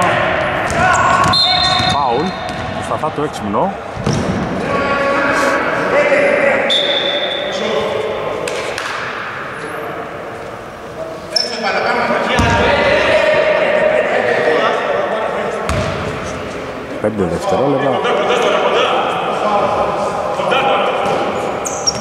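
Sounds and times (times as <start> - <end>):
players' voices: 0.0 - 22.0
referee's whistle: 1.2 - 2.4, 6.7 - 7.6.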